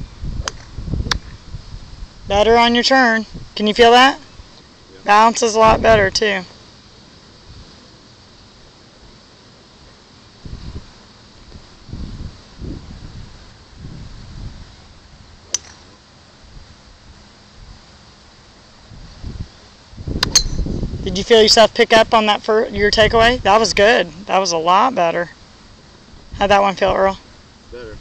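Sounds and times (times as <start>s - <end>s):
wind rumble on microphone: 0.0s - 4.4s, 5.1s - 6.4s, 10.4s - 15.4s, 18.9s - 24.2s
golf club striking ball: 0.4s - 1.3s, 15.4s - 16.0s, 20.2s - 20.8s.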